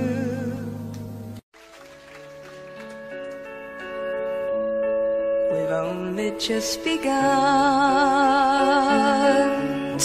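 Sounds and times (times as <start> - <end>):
soft instrumental music: 0.0 - 10.0.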